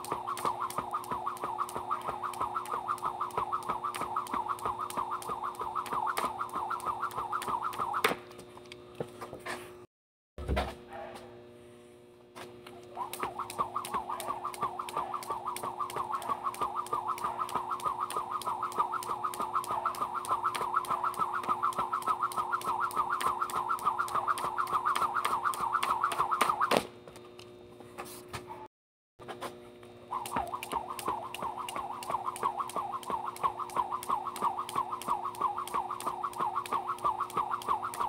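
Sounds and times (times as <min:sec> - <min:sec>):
jump rope whirring and striking: 0:00.0 - 0:09.3, 0:12.4 - 0:27.4, 0:29.2 - 0:38.0.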